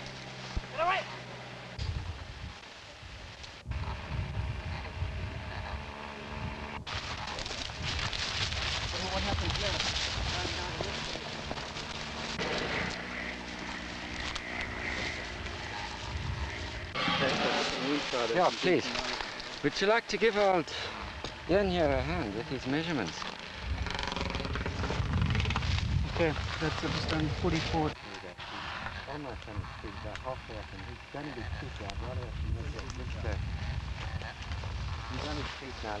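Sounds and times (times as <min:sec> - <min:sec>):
steady engine drone: 0:00.0 - 0:36.0
steady low rumble: 0:00.0 - 0:36.0
men talking indistinctly: 0:08.9 - 0:11.6, 0:17.0 - 0:23.3, 0:26.1 - 0:33.5, 0:35.1 - 0:36.0.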